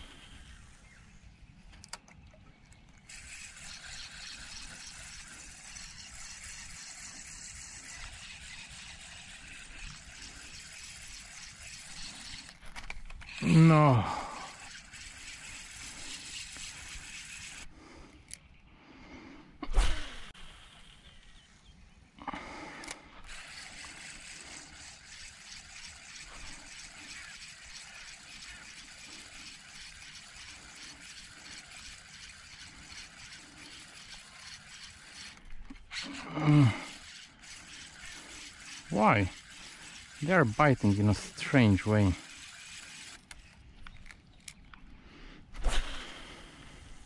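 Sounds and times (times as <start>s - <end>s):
fishing reel whirring and ticking: 3.0s - 17.7s, 22.8s - 44.6s
short vocal sound: 13.4s - 14.6s.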